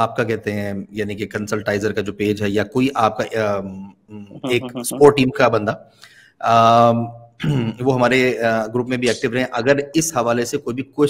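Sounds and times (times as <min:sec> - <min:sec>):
man speaking: 0:00.0 - 0:05.8, 0:06.4 - 0:11.0
man's hesitation vowel: 0:04.1 - 0:05.3.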